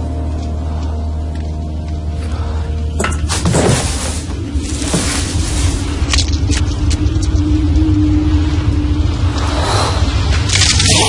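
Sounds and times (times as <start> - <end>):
deep steady rumble: 0.0 - 11.0.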